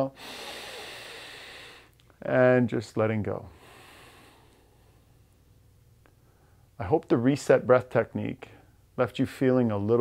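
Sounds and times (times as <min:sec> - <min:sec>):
man breathing in deeply: 0:00.1 - 0:02.0, 0:03.5 - 0:05.1.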